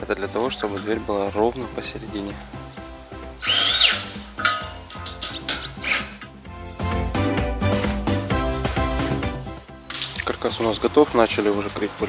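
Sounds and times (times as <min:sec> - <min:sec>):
background music: 0:00.0 - 0:12.0
metallic clinks and rattles: 0:04.3 - 0:06.2.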